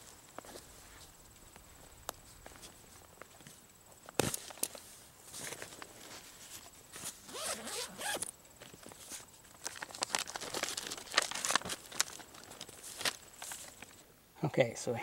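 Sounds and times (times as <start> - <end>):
plastic bag rustling: 5.3 - 14.0
backpack zipper opening: 7.3 - 8.3.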